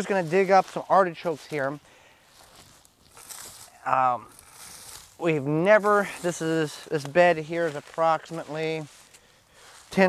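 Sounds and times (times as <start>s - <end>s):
dry plant stalks rustling: 0.0s - 10.0s.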